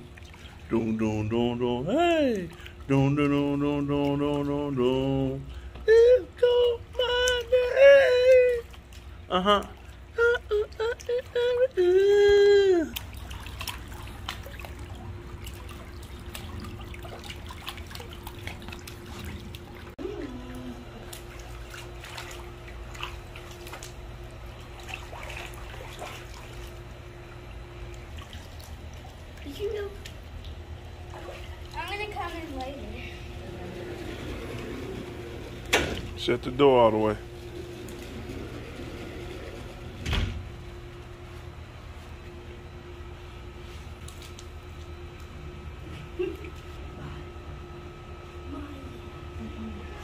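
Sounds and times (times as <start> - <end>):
pool water splashing: 0.0 - 49.9
faint steady hum: 0.0 - 50.0.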